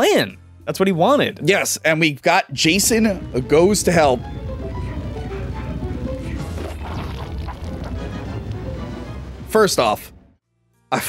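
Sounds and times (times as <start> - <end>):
horror film music: 2.5 - 10.3.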